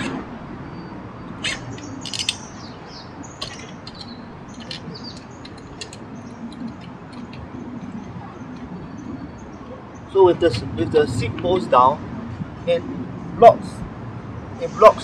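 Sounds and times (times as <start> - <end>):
birds chirping: 0.6 - 11.9
bicycle parts clicking and knocking: 1.7 - 2.7, 3.3 - 8.9.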